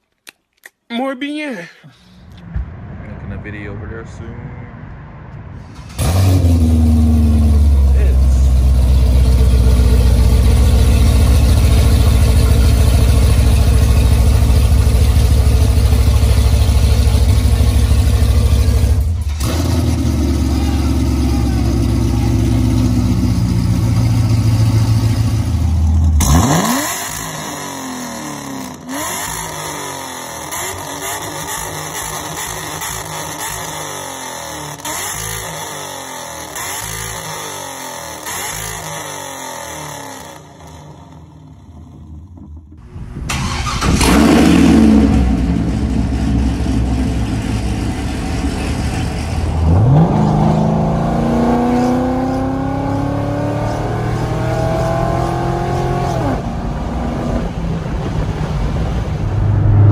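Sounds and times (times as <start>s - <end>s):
car exhaust idling and revving: 2.2s - 59.9s.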